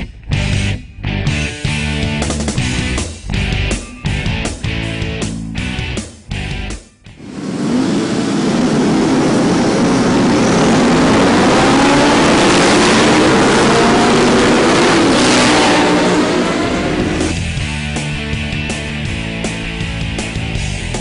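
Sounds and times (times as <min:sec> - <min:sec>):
rock music: 0:00.0 - 0:07.2, 0:11.4 - 0:21.0
racing motorcycles accelerating: 0:07.2 - 0:18.3.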